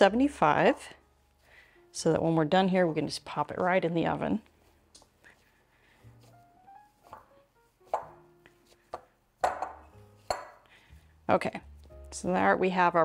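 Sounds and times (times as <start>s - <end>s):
soft background music: 0.0s - 13.0s
dough squishing by hand: 2.8s - 12.0s.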